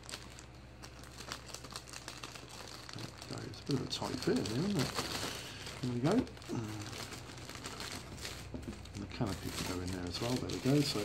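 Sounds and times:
plastic bag crinkling: 0:00.0 - 0:11.0.

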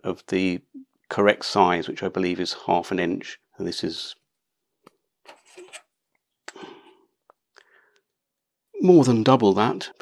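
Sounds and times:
faint rubbing and clicks: 0:04.8 - 0:06.2.

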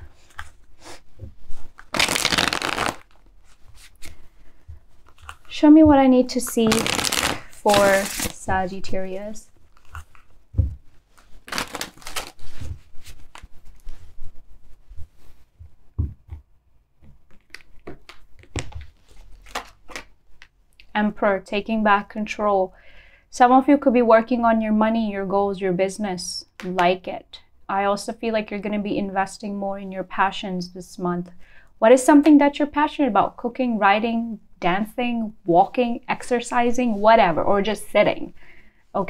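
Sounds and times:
cards shuffling: 0:01.7 - 0:04.2, 0:06.5 - 0:08.4, 0:11.1 - 0:13.9, 0:17.3 - 0:20.1.

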